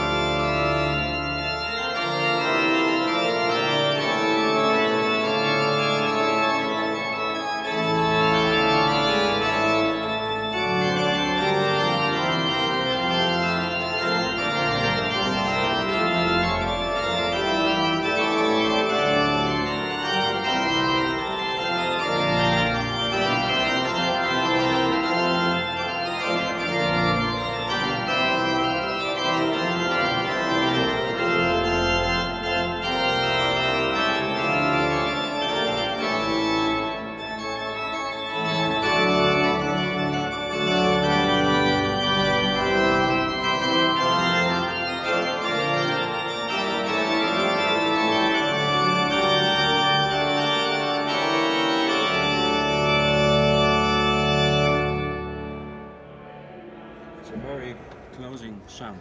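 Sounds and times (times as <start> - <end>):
deep organ pedal bass: 0.0 - 58.1
pipe organ chords: 0.0 - 59.0.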